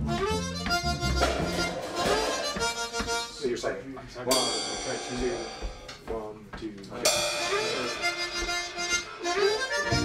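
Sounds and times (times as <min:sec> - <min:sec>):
blues harmonica: 0:00.0 - 0:03.8, 0:07.3 - 0:10.0.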